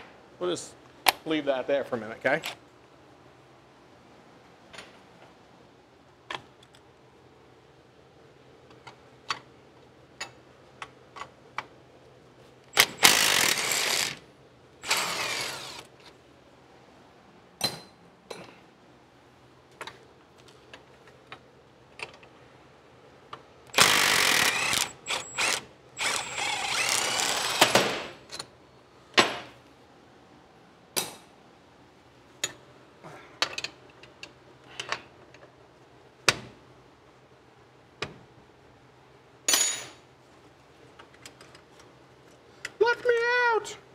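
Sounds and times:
cordless power tool running: 14.8 - 15.8, 23.8 - 27.7.

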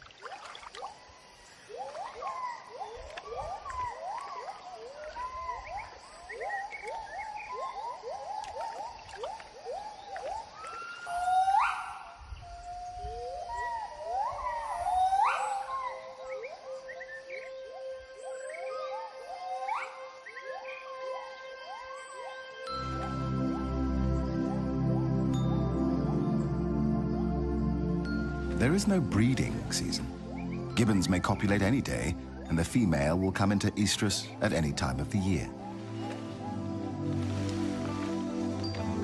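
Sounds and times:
gibbon hoots and whoops: 10.7 - 16.2
soft background music: 14.8 - 39.0.

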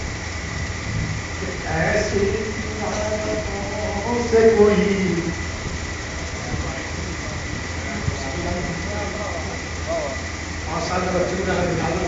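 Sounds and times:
sound system and fan hum: 0.0 - 12.0
thin constant tone: 0.0 - 12.0
faint voices: 6.2 - 12.0.

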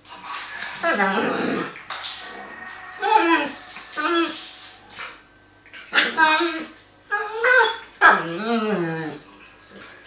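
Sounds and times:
dog whining moan: 0.8 - 4.5, 5.9 - 9.2.

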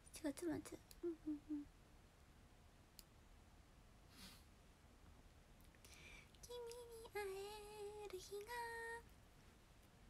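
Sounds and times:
young woman singing: 6.4 - 9.1.

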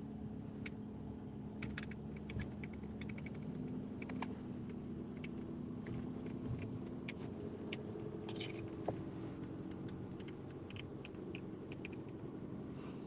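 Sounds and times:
car engine and road hum: 0.0 - 13.0.

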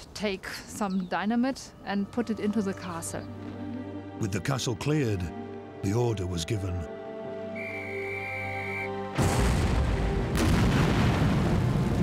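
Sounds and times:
low background music: 0.2 - 12.0
large explosion: 9.2 - 12.0.

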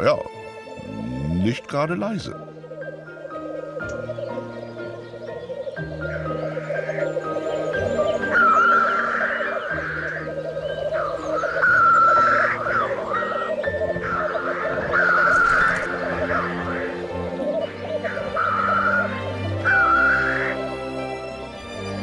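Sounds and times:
grouse bubbling song: 0.0 - 20.8
background music with held notes: 0.0 - 22.0.

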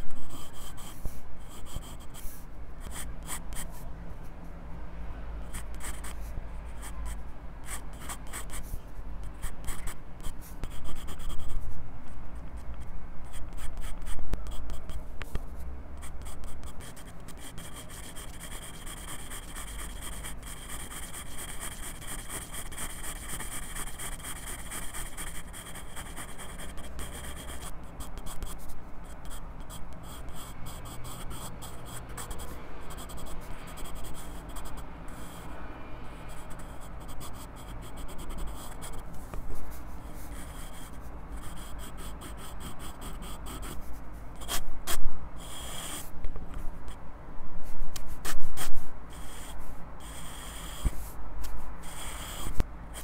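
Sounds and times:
pencil scratching on paper: 0.0 - 3.9, 5.5 - 8.7, 9.3 - 11.7, 12.6 - 35.6, 36.3 - 46.6, 47.9 - 53.0.

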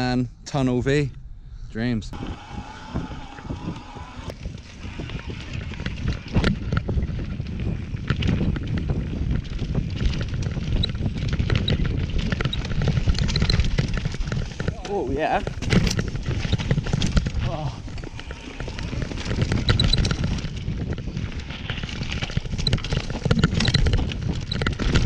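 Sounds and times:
wind buffeting microphone: 0.0 - 25.0
bike rattling over bumps: 2.2 - 25.0.

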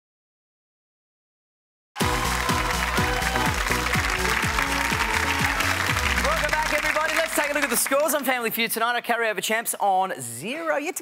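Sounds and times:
studio audience applause: 2.0 - 8.6
game show music: 2.0 - 8.7.

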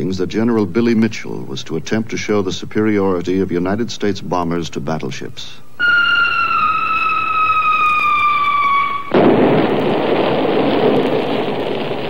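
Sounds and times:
falling bomb whistle: 5.8 - 10.0
loud explosion: 5.8 - 12.0.

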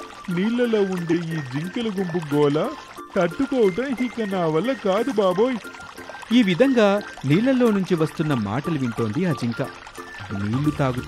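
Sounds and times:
background music: 0.0 - 11.0
person speaking: 6.3 - 11.0.

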